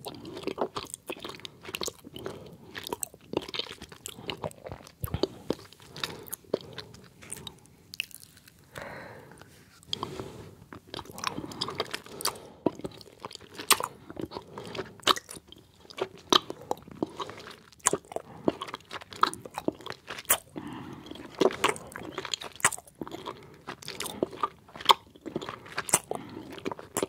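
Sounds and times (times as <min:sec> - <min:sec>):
chewing gummy candies: 0:00.0 - 0:27.0
lip and tongue clicks: 0:10.8 - 0:27.0.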